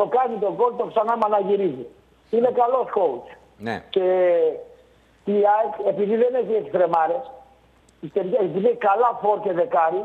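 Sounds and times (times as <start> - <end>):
man talking: 3.6 - 4.0.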